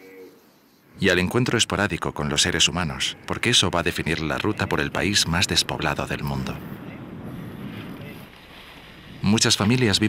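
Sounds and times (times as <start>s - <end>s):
wind noise on microphone: 3.2s - 10.0s.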